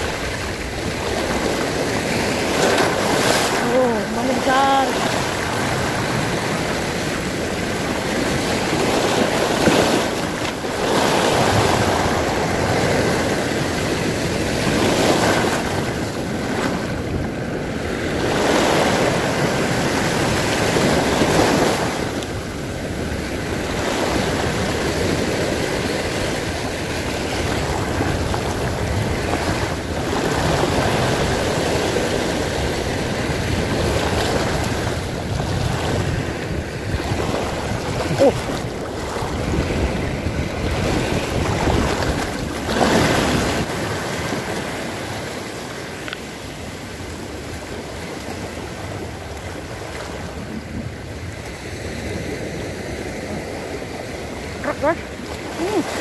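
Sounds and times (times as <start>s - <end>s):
small waves breaking on shore: 0.0s - 56.0s.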